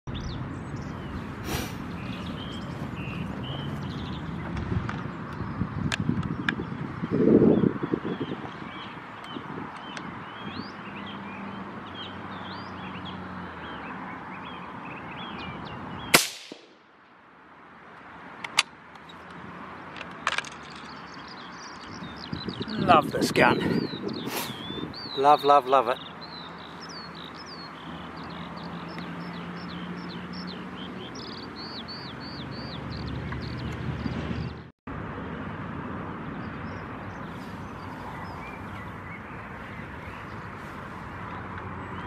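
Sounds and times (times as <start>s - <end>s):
birdsong: 0.1s - 16.8s, 19.0s - 34.7s, 36.2s - 42.0s
rifle shot: 16.1s - 16.8s.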